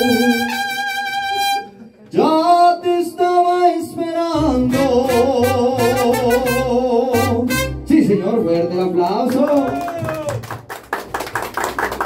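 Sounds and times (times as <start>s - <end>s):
mariachi band playing ballad: 0.0s - 10.1s
deep bass: 4.2s - 9.0s.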